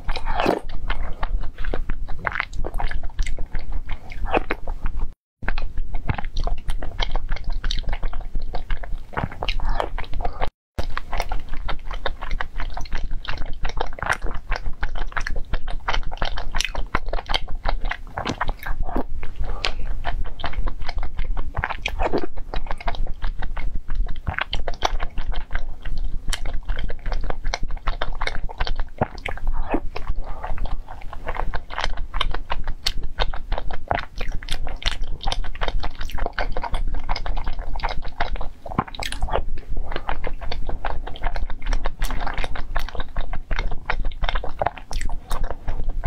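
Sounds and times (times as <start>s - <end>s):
person chewing food: 0.0s - 46.0s
wet mouth clicks: 0.0s - 46.0s.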